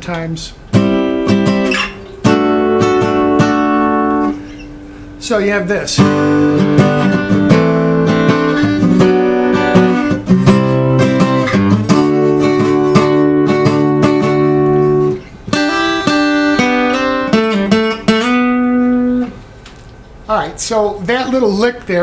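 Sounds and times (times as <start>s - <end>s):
acoustic guitar strumming chords: 0.0s - 19.6s.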